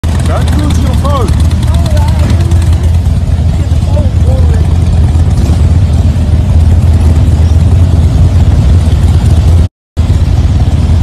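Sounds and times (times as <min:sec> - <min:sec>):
motorcycle engine rumble: 0:00.0 - 0:11.0.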